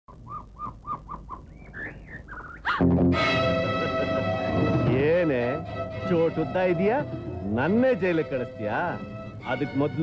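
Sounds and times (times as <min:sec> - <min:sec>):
bird whistling call: 0:00.1 - 0:02.8.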